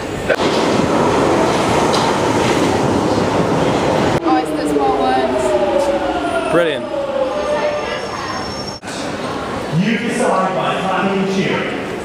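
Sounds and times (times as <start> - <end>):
train wheels on rails: 0.0 - 6.0.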